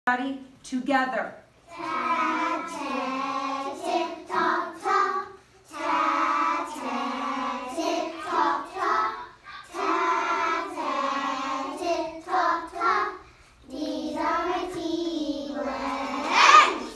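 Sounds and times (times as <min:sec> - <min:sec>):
children chanting in unison: 0:01.7 - 0:16.9.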